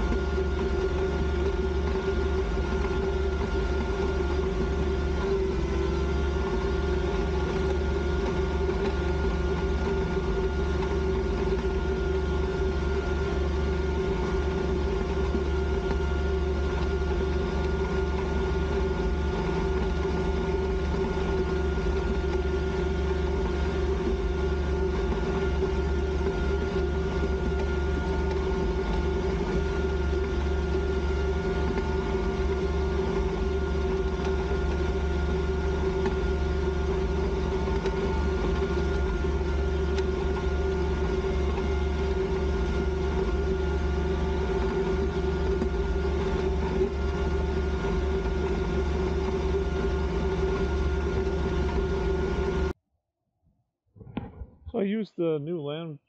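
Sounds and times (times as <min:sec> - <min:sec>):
tractor diesel engine under load: 0:00.0 - 0:52.7.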